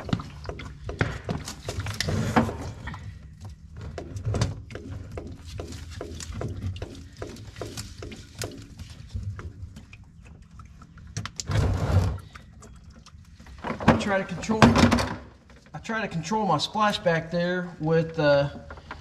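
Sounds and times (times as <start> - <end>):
oil gulping out of a drain: 0.0 - 14.6.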